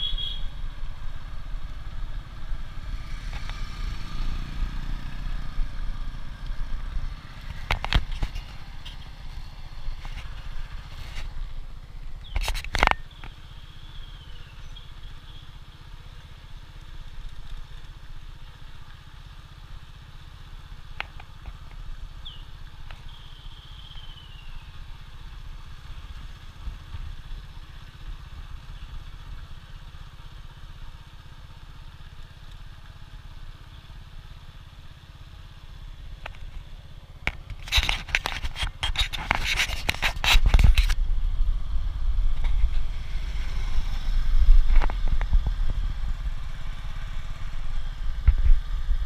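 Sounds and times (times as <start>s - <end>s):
motorcycle engine rumbling: 0.0s - 49.0s.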